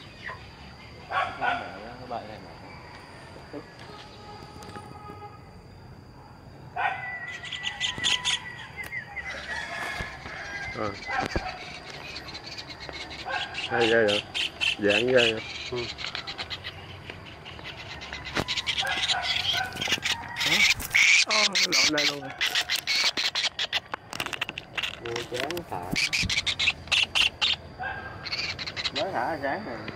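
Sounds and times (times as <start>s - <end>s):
kingfisher rattling call: 10.2s - 29.8s.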